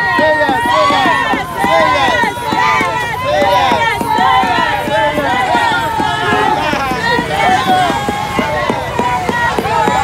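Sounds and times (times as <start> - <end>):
overlapping voices: 0.0 - 10.0.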